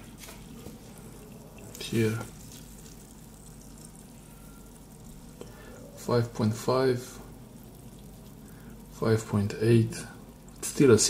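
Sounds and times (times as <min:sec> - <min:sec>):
faint fizzing in a glass: 0:00.0 - 0:11.0
small bubbles crackling: 0:00.0 - 0:11.0.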